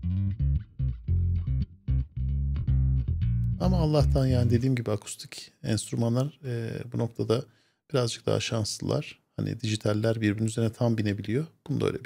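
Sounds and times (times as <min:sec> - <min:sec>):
bass guitar plucked notes: 0:00.0 - 0:04.8.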